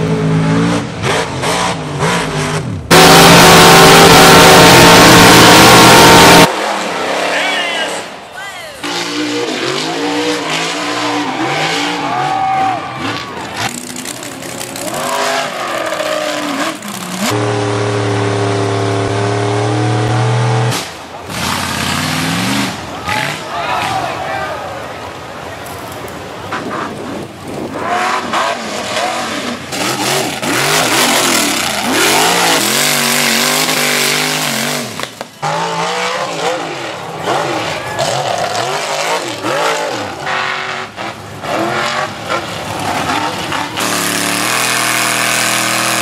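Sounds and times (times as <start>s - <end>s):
truck engines revving: 0.0s - 46.0s
people shouting: 7.3s - 13.7s, 23.0s - 24.9s.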